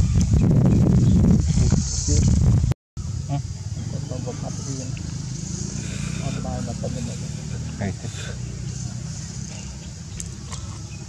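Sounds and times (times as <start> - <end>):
low motor rumble: 2.5 - 11.0
faint voices talking: 3.2 - 11.0.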